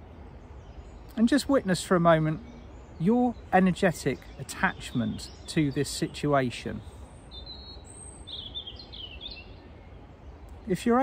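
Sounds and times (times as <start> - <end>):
low outdoor rumble: 0.0 - 11.0
songbird warbling chirps: 0.0 - 11.0.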